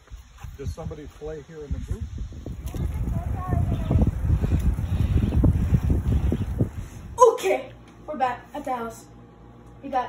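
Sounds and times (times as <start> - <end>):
wind buffeting microphone: 0.4 - 7.4.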